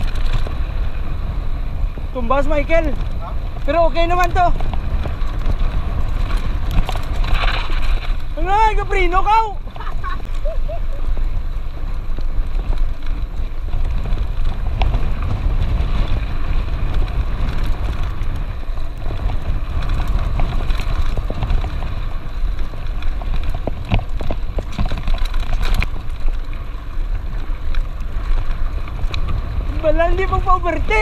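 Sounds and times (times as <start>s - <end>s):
bike clicks and rattles: 0.0s - 31.0s
bike tyres on gravel: 0.0s - 31.0s
wind rumble on microphone: 0.0s - 31.0s.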